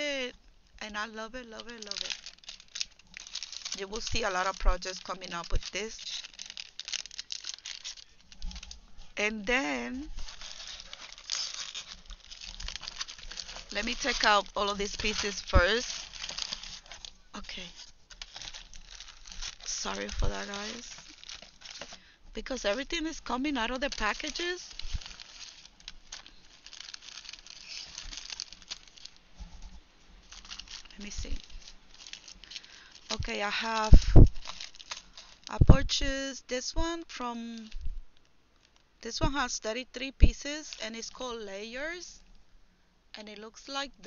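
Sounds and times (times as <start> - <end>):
plastic packaging crinkling: 0.8 - 36.2, 37.4 - 39.5, 40.2 - 42.3.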